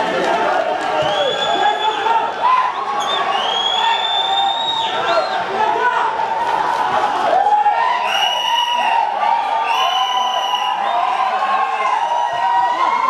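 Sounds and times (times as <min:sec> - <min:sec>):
stadium crowd shouting and cheering: 0:00.0 - 0:13.0.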